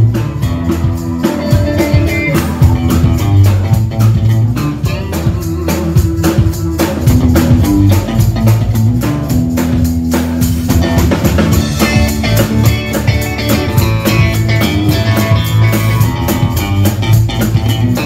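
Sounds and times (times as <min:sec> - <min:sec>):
drum kit beat: 0:00.0 - 0:18.0
live band playing: 0:00.0 - 0:18.0.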